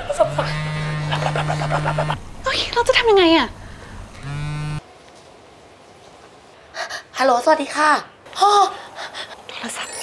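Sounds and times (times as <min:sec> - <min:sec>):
phone buzzing on vibrate: 0:00.2 - 0:02.2, 0:04.2 - 0:04.8.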